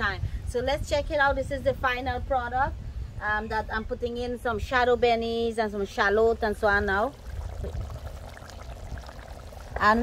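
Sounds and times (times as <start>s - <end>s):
curry bubbling in a pot: 5.9s - 10.0s.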